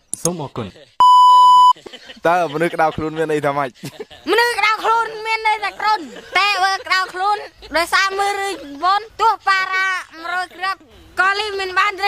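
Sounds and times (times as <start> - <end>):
censor beep: 1.0 - 1.8.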